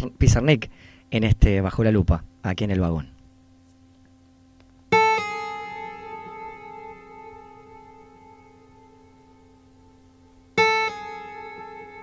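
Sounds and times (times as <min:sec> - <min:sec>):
acoustic guitar plucked notes: 0:04.8 - 0:12.0.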